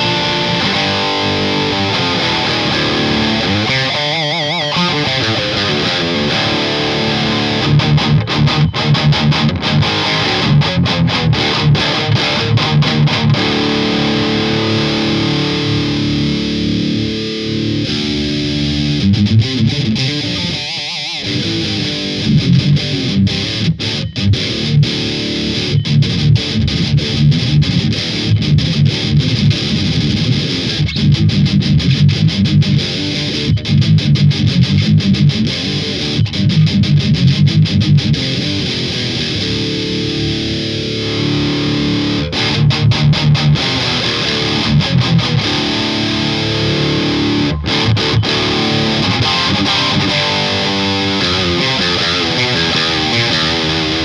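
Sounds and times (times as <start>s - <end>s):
distorted electric guitar riffing: 0.0s - 54.0s.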